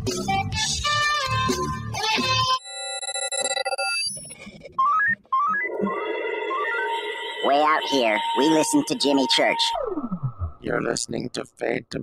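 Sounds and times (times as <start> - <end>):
electronic music jingle: 4.8 - 10.6.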